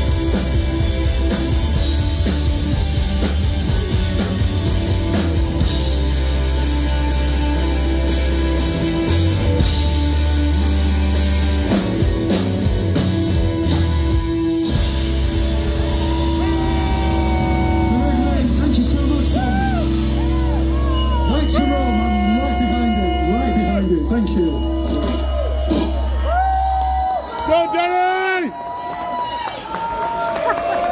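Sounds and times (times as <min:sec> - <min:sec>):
deep bass guitar notes: 0:00.0 - 0:26.8
electric guitar: 0:00.0 - 0:27.3
drums: 0:00.0 - 0:30.9
person's voice: 0:17.9 - 0:19.8, 0:21.3 - 0:25.1.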